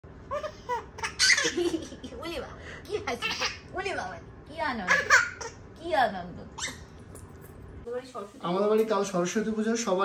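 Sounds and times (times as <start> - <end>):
toddler laughing: 0.3 - 2.2.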